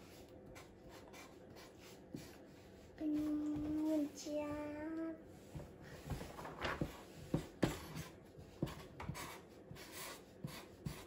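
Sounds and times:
marker drawing on paper: 0.0 - 4.2, 6.8 - 11.0.

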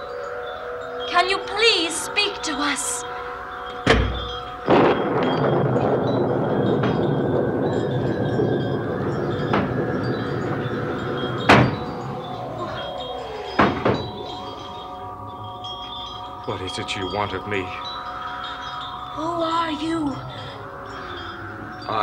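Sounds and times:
eerie chiming music: 0.0 - 22.0.

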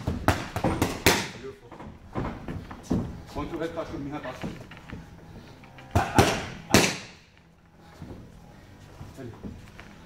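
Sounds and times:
punches hitting leather mitts: 0.0 - 1.4, 5.9 - 7.2.

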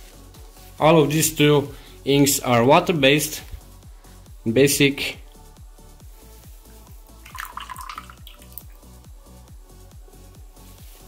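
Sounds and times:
background music with steady beat: 0.0 - 11.0
liquid pouring and dripping: 7.3 - 8.8.

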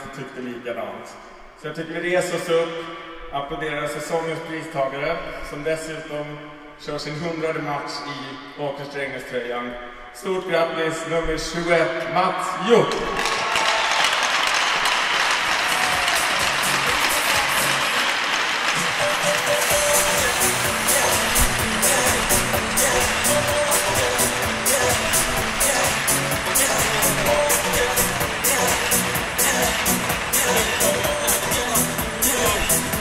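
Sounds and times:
crowd applauding: 12.9 - 33.0
arena music with steady beat: 14.8 - 33.0.

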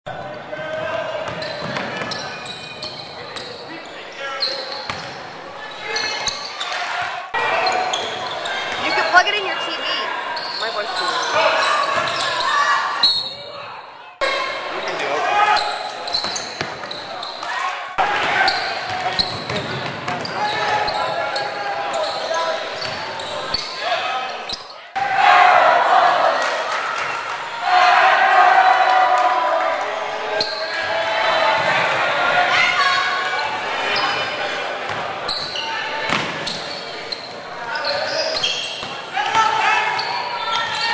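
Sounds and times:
voices echoing in gym: 0.1 - 40.9
basketball bouncing on court: 1.2 - 3.5, 18.9 - 20.4.

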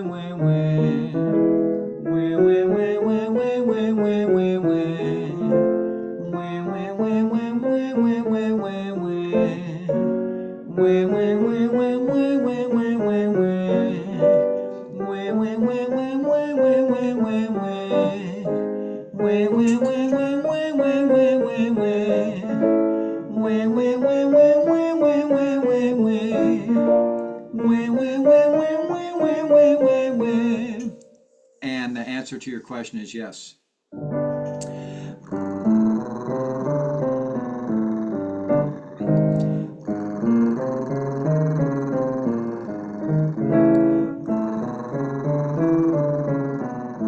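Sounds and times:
voices singing vocal warm-up: 0.0 - 1.5, 2.1 - 31.1, 35.0 - 47.0
piano: 0.0 - 31.6, 33.9 - 47.0.

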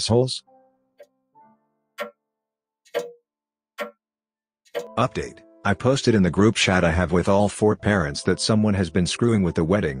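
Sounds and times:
clock ticking: 2.0 - 2.2, 2.9 - 3.2, 4.7 - 5.1.

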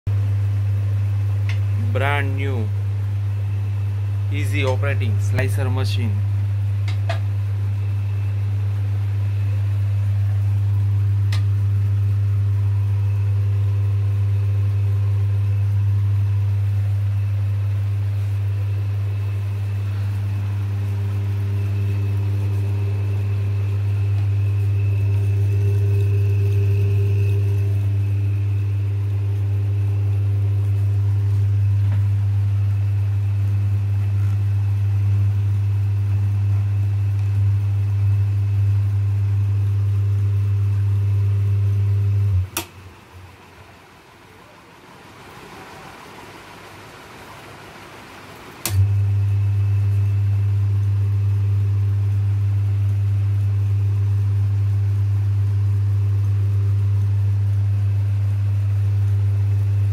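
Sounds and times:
meat slicer motor hum: 6.4 - 42.5.

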